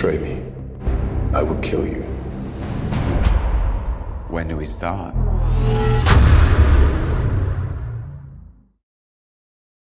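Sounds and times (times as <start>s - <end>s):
deep rumble: 0.6s - 8.6s
sharp cinematic hit: 5.2s - 8.7s.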